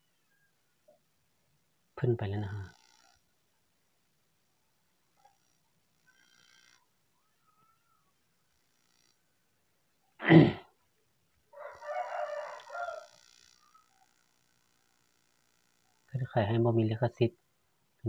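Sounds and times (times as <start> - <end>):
rooster crowing: 11.5 - 14.1.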